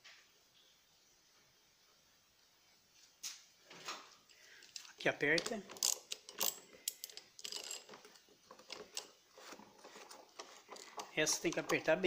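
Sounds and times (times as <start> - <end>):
socket wrench clicking: 5.4 - 7.9.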